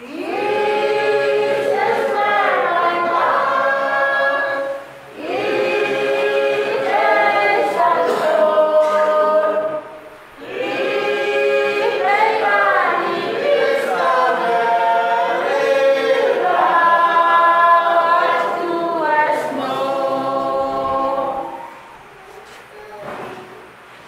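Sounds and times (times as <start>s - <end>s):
congregation singing a hymn: 0.0s - 23.3s.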